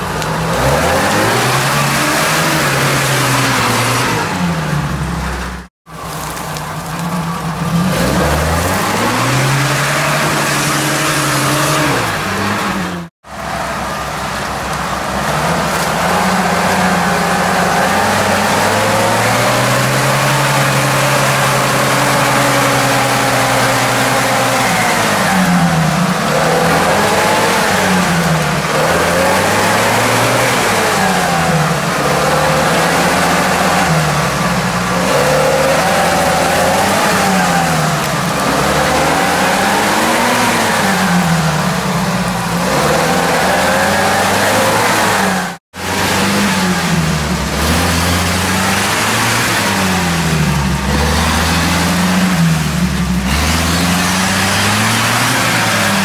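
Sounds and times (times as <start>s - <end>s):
off-road vehicle engine revving: 0.0s - 56.0s.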